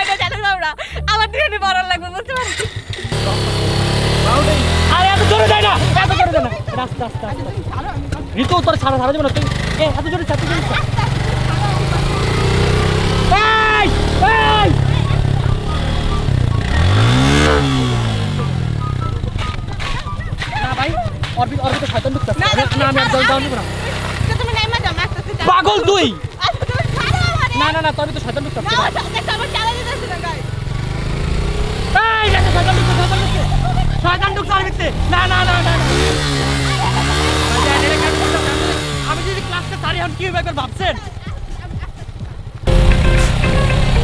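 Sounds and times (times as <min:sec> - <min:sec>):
motorcycle engine running at low revs: 0:02.6 - 0:44.0
excited yelling: 0:10.4 - 0:17.0, 0:31.9 - 0:39.3
man shouting: 0:13.2 - 0:14.8, 0:31.9 - 0:33.3.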